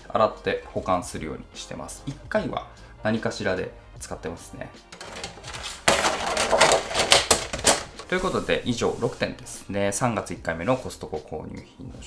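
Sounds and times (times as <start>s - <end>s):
plastic tray and lid clattering: 4.9s - 8.2s.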